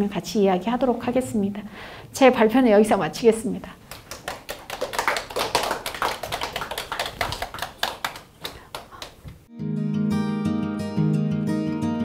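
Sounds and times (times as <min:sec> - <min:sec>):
small audience applauding: 0:03.9 - 0:09.3.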